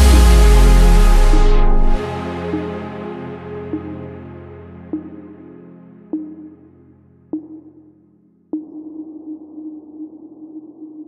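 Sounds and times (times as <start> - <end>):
synth pad: 0.0 - 8.4.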